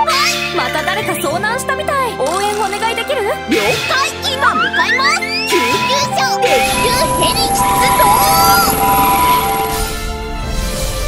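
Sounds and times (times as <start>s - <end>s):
bright children's music: 0.0s - 9.9s
helicopter rotor chopping: 6.5s - 9.9s.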